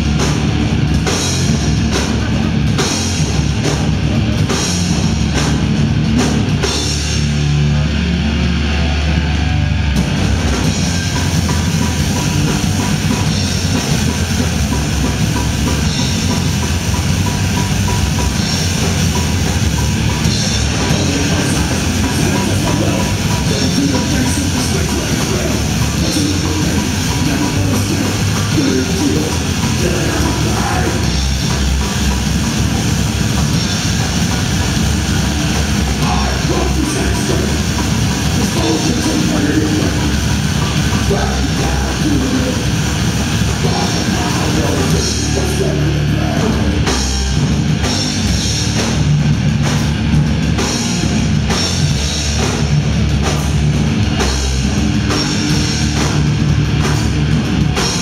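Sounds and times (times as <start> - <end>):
distorted guitars: 0.0 - 58.0
fast dense drumming: 0.0 - 58.0
hardcore band playing live: 0.0 - 58.0.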